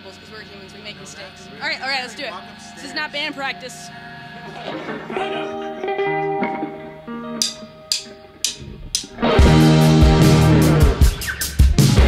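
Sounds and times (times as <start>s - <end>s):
electric guitar and bass notes: 0.0s - 12.0s
rock band playing: 4.0s - 12.0s.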